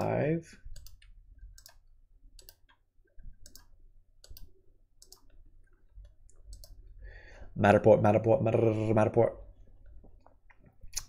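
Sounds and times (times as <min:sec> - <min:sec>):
computer mouse clicking: 0:00.7 - 0:06.8.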